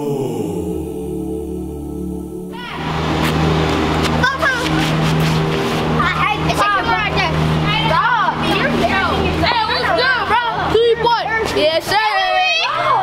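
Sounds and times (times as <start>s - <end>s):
steady low hum: 0.0s - 11.8s
children calling and chattering: 4.0s - 13.0s.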